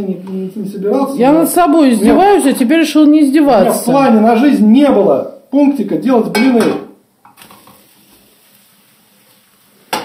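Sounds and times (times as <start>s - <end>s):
spatula clanging on frying pan: 6.3s - 7.4s
crepe sizzling in pan: 7.2s - 10.0s.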